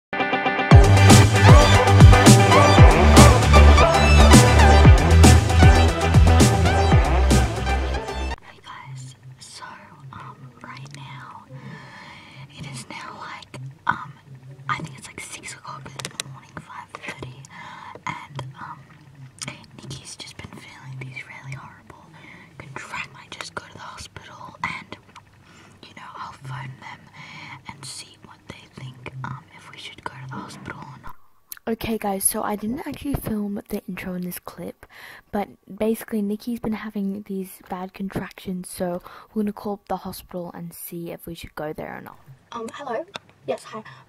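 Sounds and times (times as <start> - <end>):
person whispering: 8.4 - 25.1, 25.8 - 31.2, 42.5 - 44.0.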